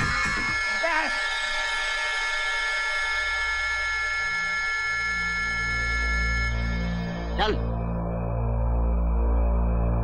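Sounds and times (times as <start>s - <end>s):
high electronic drone chord: 0.0s - 10.0s
low bass drone: 0.0s - 10.0s.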